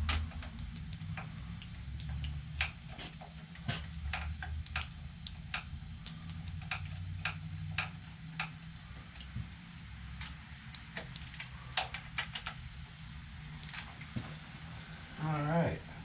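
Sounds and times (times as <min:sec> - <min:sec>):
low steady hum: 0:00.0 - 0:16.0
metallic clicks and taps of tools: 0:00.1 - 0:08.5, 0:10.2 - 0:12.6.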